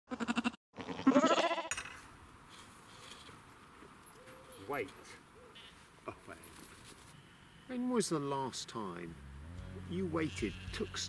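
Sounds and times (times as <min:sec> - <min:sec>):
sheep bleating: 0:00.1 - 0:01.7, 0:05.5 - 0:05.8, 0:07.1 - 0:08.0, 0:09.4 - 0:11.0.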